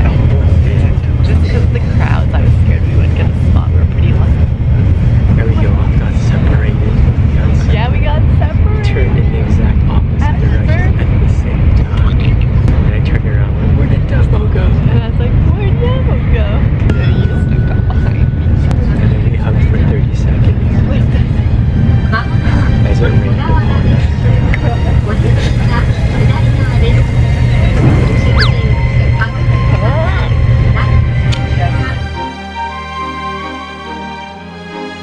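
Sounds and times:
train running rumble: 0.0 - 32.8
indistinct voices: 0.0 - 35.0.

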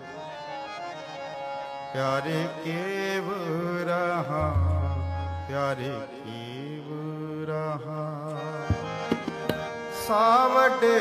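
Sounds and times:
harmonium: 0.0 - 11.0
man singing long note: 4.3 - 7.7.

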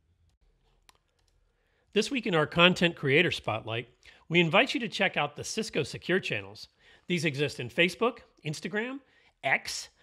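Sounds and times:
man speaking: 1.9 - 10.0.

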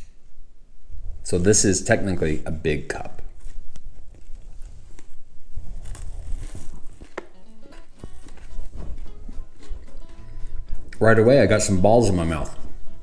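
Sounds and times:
man chewing crunchy food: 5.6 - 11.1
background music: 7.1 - 13.0.

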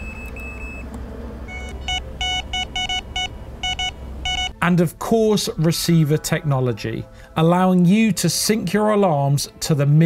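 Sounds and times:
bite alarm beeping: 0.0 - 0.9, 1.5 - 4.6.

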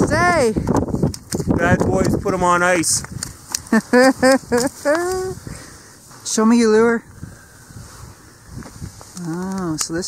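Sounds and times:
man laughing: 3.7 - 5.4.

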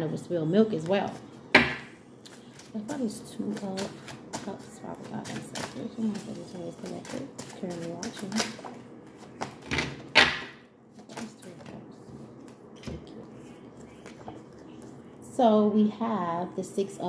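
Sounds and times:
cards being shuffled: 2.2 - 9.9.

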